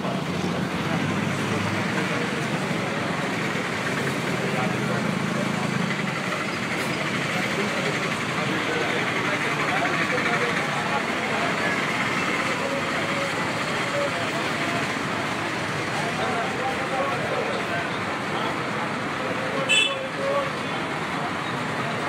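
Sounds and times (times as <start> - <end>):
indistinct voices: 0.0 - 22.0
traffic on wet road: 0.0 - 22.0.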